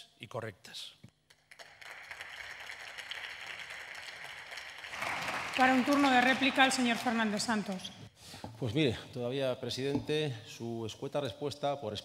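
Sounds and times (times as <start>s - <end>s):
group applause: 1.3s - 7.8s.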